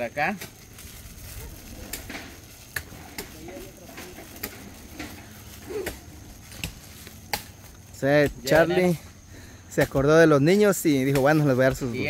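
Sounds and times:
sharp plastic crackle: 0.0s - 8.9s
plastic candy bag crinkling: 0.5s - 8.0s.

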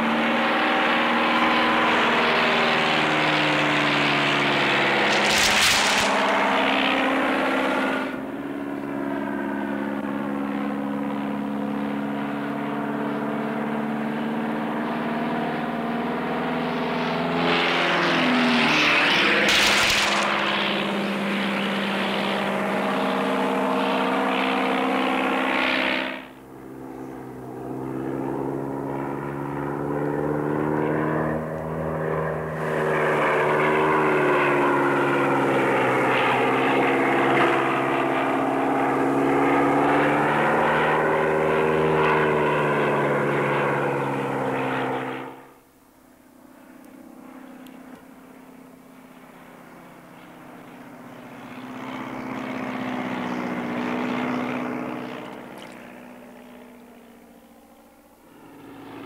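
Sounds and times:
propeller aircraft engine droning: 0.0s - 59.0s
short sharp crack: 5.0s - 6.4s, 19.3s - 20.5s.

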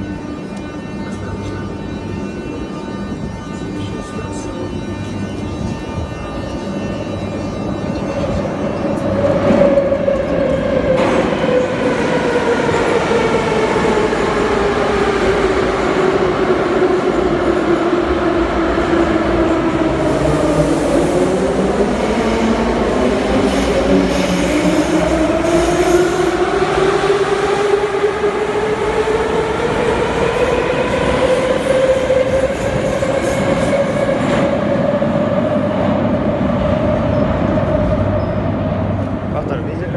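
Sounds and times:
wheel and rail rumble: 0.0s - 39.9s.

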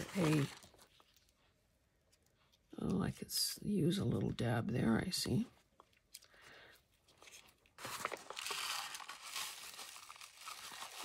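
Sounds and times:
paper crinkling: 0.0s - 1.5s, 5.9s - 11.0s.

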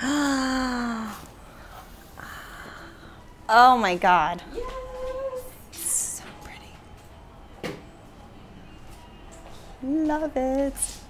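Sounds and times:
woman humming: 0.0s - 1.3s.

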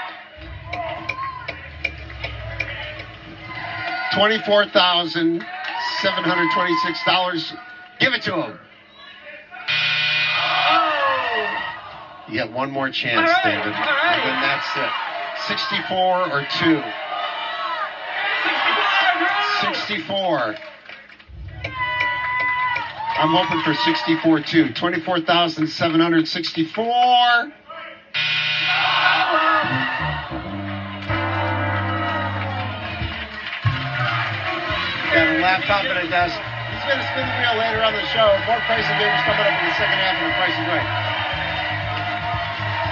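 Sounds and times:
audience groaning: 0.0s - 4.8s, 21.3s - 24.2s, 28.7s - 42.9s
flat buzzer: 9.7s - 10.8s, 28.2s - 29.8s
game-show buzzer: 9.7s - 11.5s, 28.2s - 42.9s
falling brass notes: 28.2s - 35.1s.

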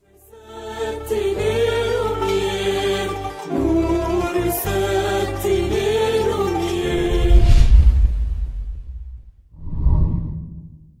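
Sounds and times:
closing music: 0.1s - 8.4s
whoosh sound effect: 7.0s - 10.9s.

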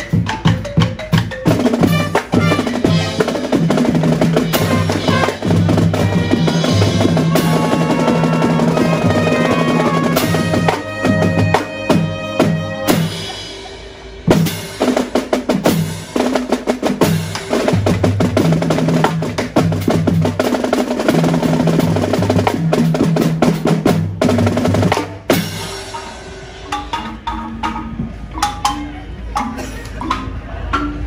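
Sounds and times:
bass drums and cymbals: 0.0s - 29.8s
snare and tenor drum rolls: 0.1s - 13.4s, 14.3s - 25.7s
held brass notes: 1.7s - 3.8s, 4.4s - 14.0s.

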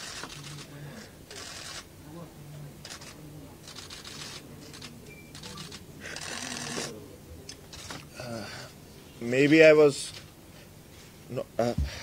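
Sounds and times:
camera shutters clicking: 0.0s - 0.7s.

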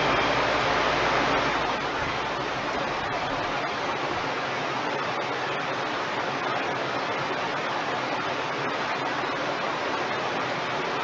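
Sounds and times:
rushing noise inside car: 0.0s - 11.0s.

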